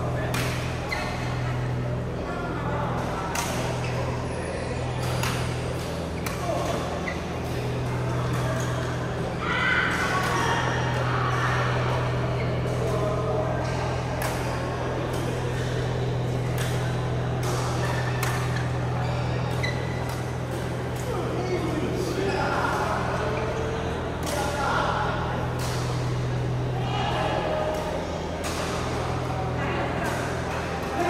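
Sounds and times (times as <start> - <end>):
steady low hum: 0.0 - 31.0
voices chattering: 0.0 - 31.0
badminton rackets hitting shuttlecocks: 0.3 - 1.8, 3.0 - 4.0, 5.0 - 9.2, 13.6 - 21.1, 25.2 - 26.8.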